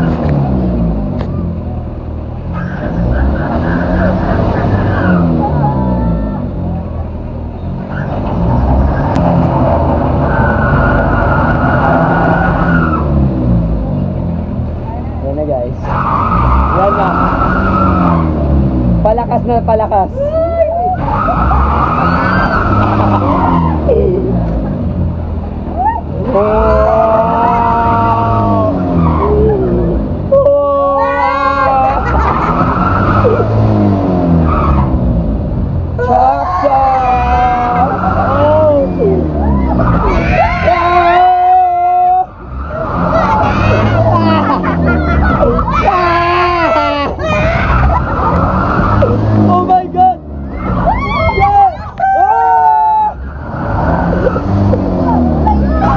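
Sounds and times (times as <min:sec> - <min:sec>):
ride machinery rumbling and whining: 0:00.0 - 0:55.9
riders shrieking and laughing: 0:02.5 - 0:06.5, 0:20.2 - 0:24.8, 0:25.7 - 0:35.0, 0:36.0 - 0:49.7, 0:50.4 - 0:55.9.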